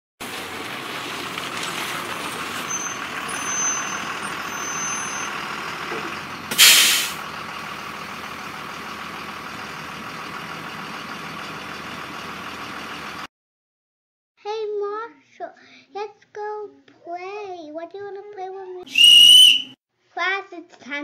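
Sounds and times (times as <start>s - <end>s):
bus engine idling: 0.2s - 13.3s
high brake squeal: 2.2s - 7.4s, 18.9s - 19.8s
air brakes hissing: 2.2s - 7.5s.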